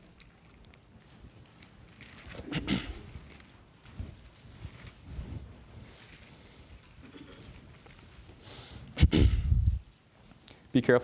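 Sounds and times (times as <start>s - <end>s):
pages being turned: 0.0s - 8.4s.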